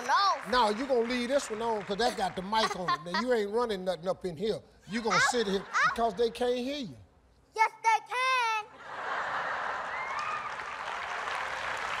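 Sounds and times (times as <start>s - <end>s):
studio audience applauding: 0.0s - 2.8s, 9.0s - 12.0s.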